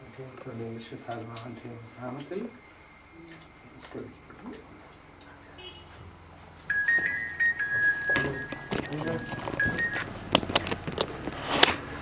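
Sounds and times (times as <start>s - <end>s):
electronic beeping melody: 6.7s - 10.7s.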